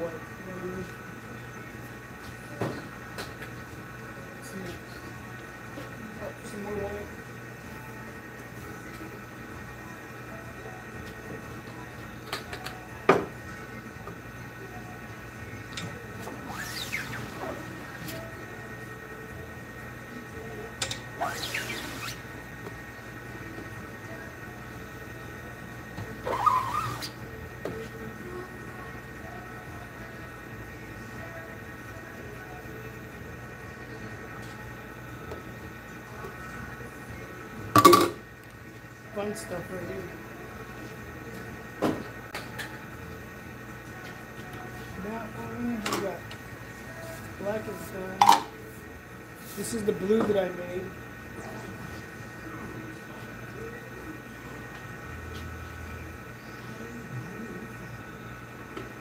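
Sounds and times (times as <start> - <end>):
steady hum: 0.0 - 59.0.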